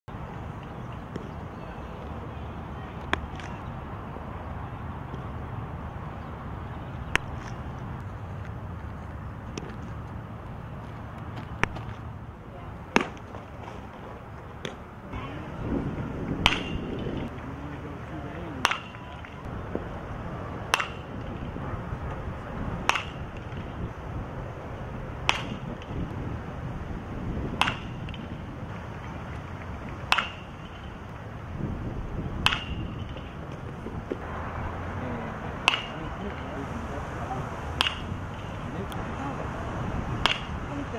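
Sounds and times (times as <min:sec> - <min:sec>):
outdoor background noise: 0:00.1 - 0:40.9
bat cracking against ball: 0:03.0 - 0:03.6, 0:07.1 - 0:07.7, 0:11.2 - 0:12.0, 0:12.9 - 0:14.0, 0:14.6 - 0:14.8, 0:16.4 - 0:17.3, 0:18.6 - 0:19.8, 0:20.6 - 0:22.2, 0:22.8 - 0:23.8, 0:25.2 - 0:26.1, 0:27.5 - 0:31.2, 0:32.4 - 0:34.3, 0:35.5 - 0:36.5, 0:37.7 - 0:38.7, 0:40.1 - 0:40.6.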